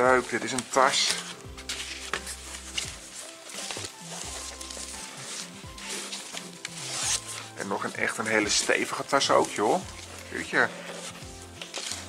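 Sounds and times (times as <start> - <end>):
background music with bass notes: 0.0 - 12.0
fabric bag rustling: 0.0 - 12.0.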